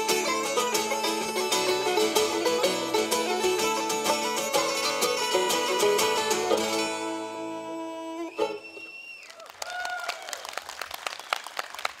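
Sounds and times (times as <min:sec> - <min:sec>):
held pipe note: 0:00.0 - 0:08.9
audience applauding: 0:08.8 - 0:12.0.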